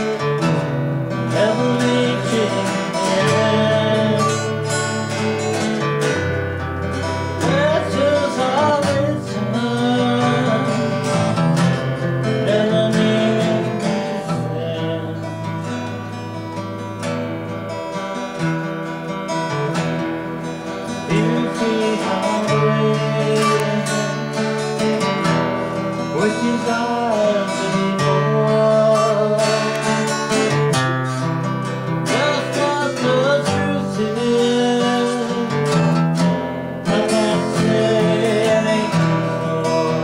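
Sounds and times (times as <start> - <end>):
person singing: 0.0 - 16.2, 20.6 - 36.0, 36.8 - 40.0
acoustic guitars playing: 0.0 - 40.0.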